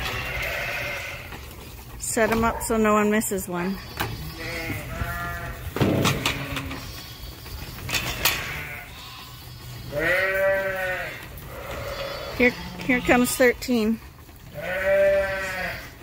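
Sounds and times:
sheep bleating: 0.0 - 1.4, 3.6 - 7.4, 8.1 - 13.8, 14.5 - 16.0.

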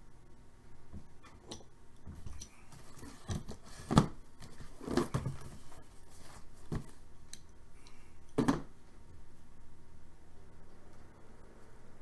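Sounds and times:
cardboard boxes handled on table: 2.1 - 7.0
cardboard knocks and scrapes: 2.8 - 7.0.

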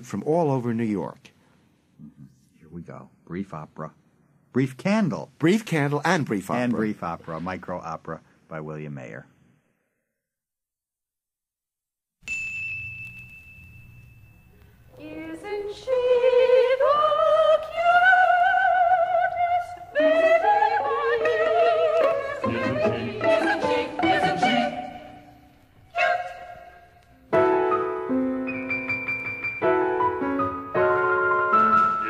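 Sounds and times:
high bell-like note: 12.2 - 14.9.

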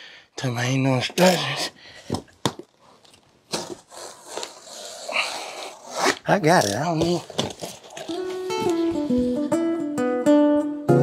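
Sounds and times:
cardboard rustling and scraping: 2.9 - 9.4.

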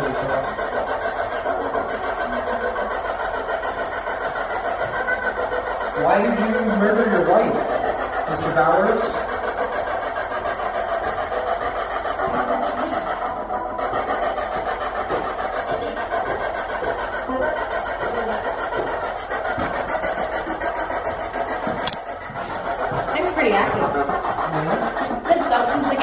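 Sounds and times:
choppy radio static: 0.0 - 26.0.

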